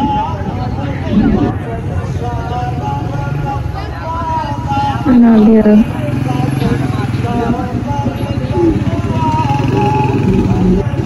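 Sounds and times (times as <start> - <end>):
crowd voices: 0.0 - 11.0
motorcycle engines running: 0.0 - 11.0.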